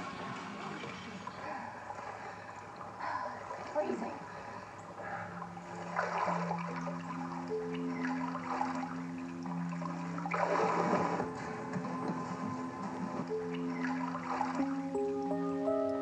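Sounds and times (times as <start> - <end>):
soft film score music: 0.0 - 16.0
water sloshing in a pool: 0.0 - 16.0.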